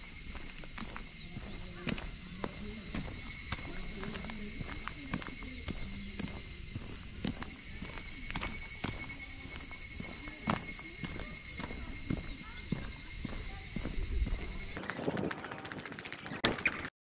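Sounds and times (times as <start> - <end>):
footsteps on asphalt: 0.0 - 14.8
high-pitched insect chorus: 0.0 - 14.8.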